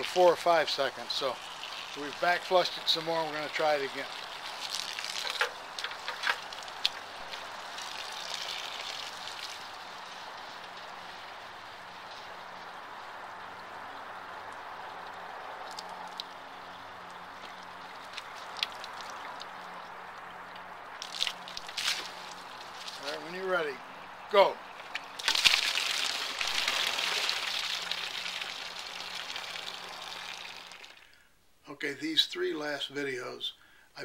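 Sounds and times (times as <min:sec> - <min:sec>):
hose water running into radiator: 0:00.0 - 0:23.7, 0:24.8 - 0:31.0.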